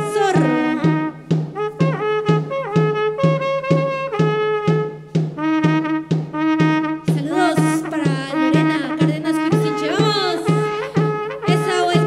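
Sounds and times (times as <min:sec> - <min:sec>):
wind band playing folk music: 0:00.0 - 0:12.0.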